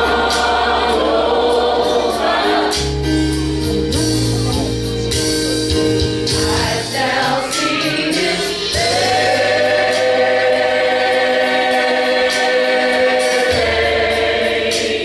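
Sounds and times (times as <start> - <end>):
choir singing gospel: 0.0 - 4.2, 5.6 - 15.0.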